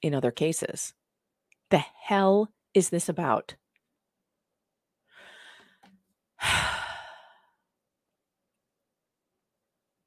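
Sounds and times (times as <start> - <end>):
woman sighing: 6.4 - 7.6.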